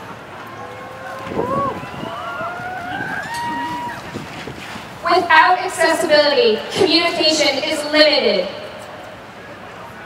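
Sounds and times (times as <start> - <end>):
wind noise on microphone: 1.0 - 7.1.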